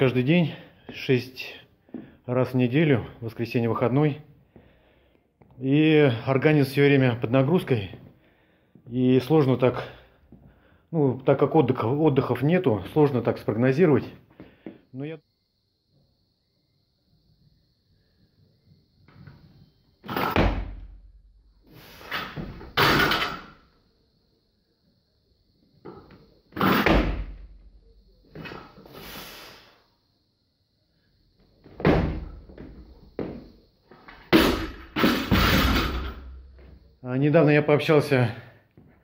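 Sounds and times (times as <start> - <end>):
barbell clatter and heavy thud: 34.3 - 36.3.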